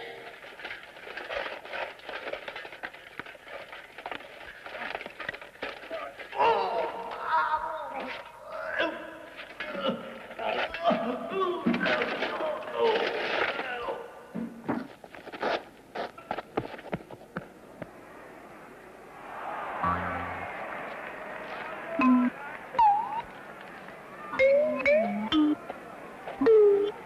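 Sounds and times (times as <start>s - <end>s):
voices without clear words: 17.8s - 27.0s.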